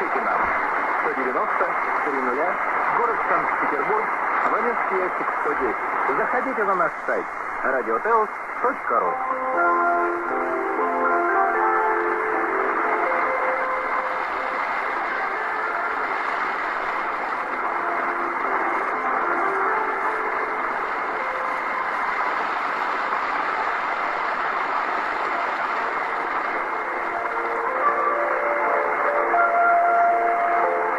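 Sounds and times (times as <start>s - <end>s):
radio hiss and static: 0.0s - 30.9s
radio music: 0.0s - 30.9s.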